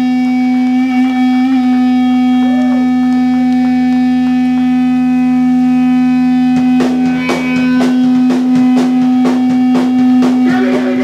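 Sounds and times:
electric guitar droning note: 0:00.0 - 0:11.0
drum kit hits: 0:04.6 - 0:11.0.

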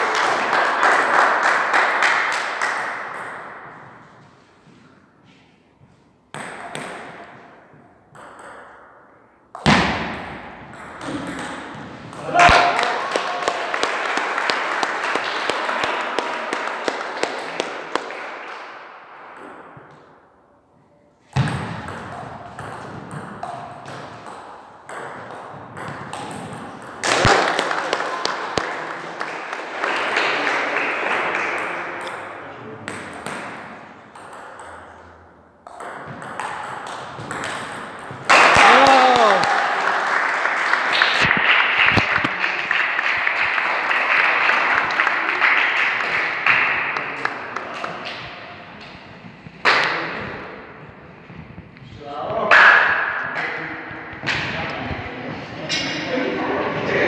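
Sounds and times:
people shouting and talking: 0:12.2 - 0:13.8, 0:38.4 - 0:39.8.

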